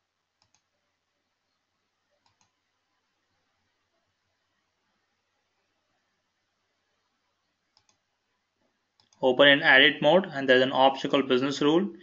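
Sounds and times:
computer mouse clicks: 0.4s - 0.7s, 2.2s - 2.6s, 7.7s - 8.1s, 9.0s - 9.2s.

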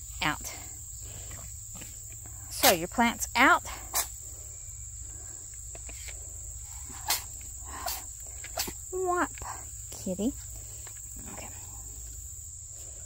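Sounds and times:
insects chorus: 0.0s - 13.0s.

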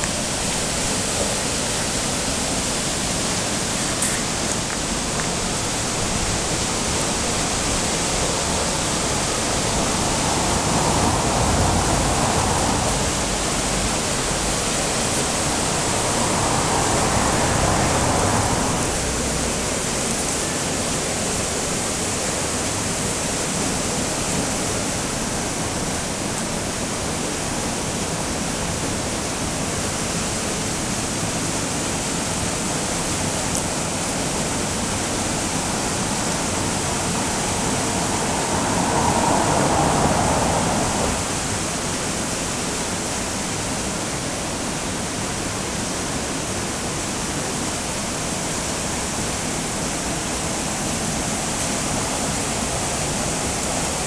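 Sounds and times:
water rushing over weir: 0.0s - 54.0s.

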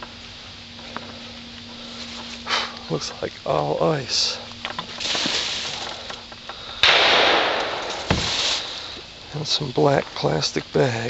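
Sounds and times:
rustling in dry leaves: 0.0s - 11.0s
low thump: 6.9s - 8.6s.

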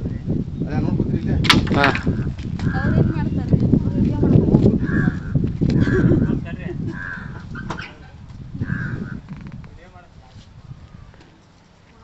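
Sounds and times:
harsh bird calls: 4.8s - 9.6s.

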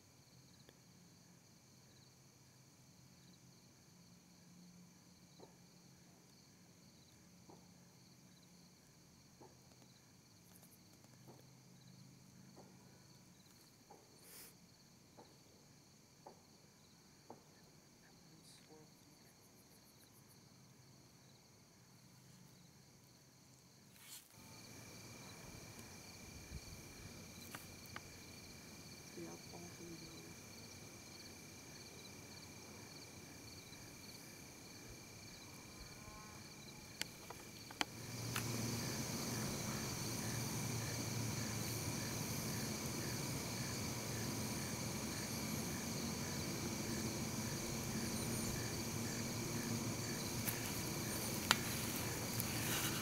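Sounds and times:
crickets and insects chirping: 0.0s - 53.0s
pulsing insect trill: 22.6s - 53.0s.

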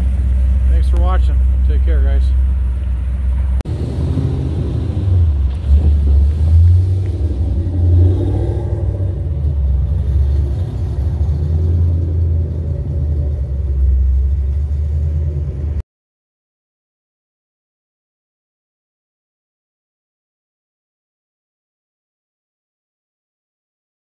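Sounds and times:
car engine rumbling through exhaust: 0.0s - 15.8s.

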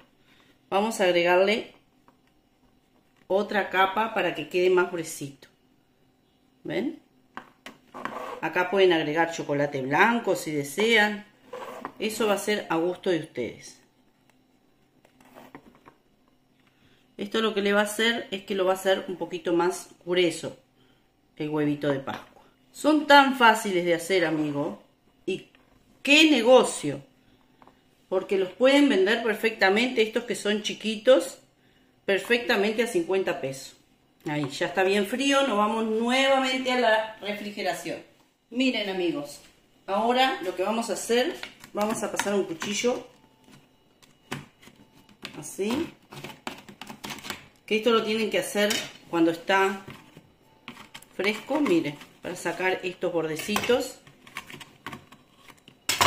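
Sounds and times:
brush scraping plastic mold: 7.9s - 8.4s.

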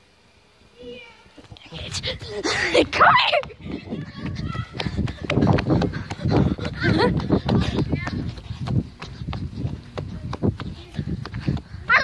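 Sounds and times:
heavy breathing: 1.7s - 2.9s, 4.7s - 12.0s
quick running footsteps: 1.8s - 12.0s.

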